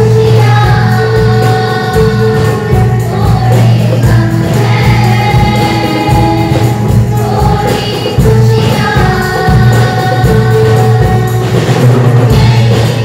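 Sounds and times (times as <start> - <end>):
choir singing in unison: 0.0 - 13.0
hand drums beating: 0.0 - 13.0.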